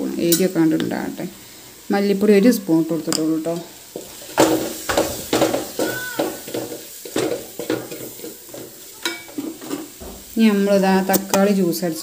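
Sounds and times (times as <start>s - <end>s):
food sizzling: 0.0s - 12.0s.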